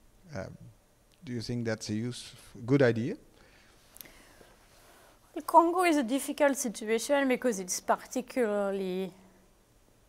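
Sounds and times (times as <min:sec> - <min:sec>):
faint breathy hiss: 0:00.0 - 0:05.4
man speaking: 0:00.3 - 0:03.3.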